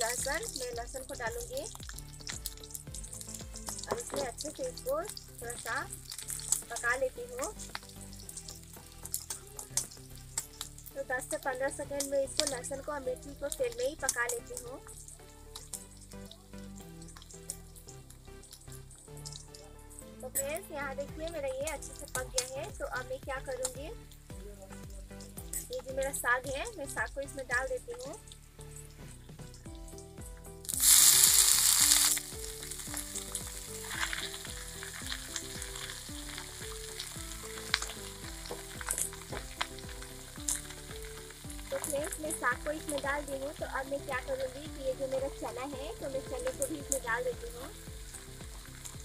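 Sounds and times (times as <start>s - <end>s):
chillies and garlic frying in oil: 0.0s - 49.0s.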